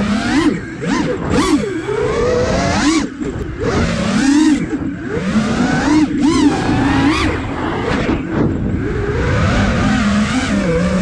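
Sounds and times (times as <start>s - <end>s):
drone motors whining: 0.0s - 11.0s
rushing wind noise: 0.0s - 11.0s.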